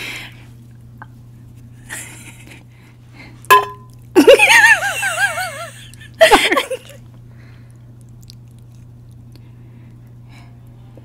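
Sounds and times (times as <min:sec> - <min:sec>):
sharp clink: 0:03.5 - 0:03.9
woman laughing loudly: 0:04.2 - 0:07.0.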